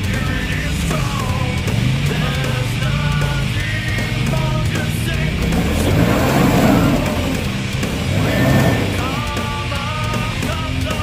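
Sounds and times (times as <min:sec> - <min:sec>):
off-road vehicle engine revving: 0:00.0 - 0:11.0
rock music: 0:00.0 - 0:11.0.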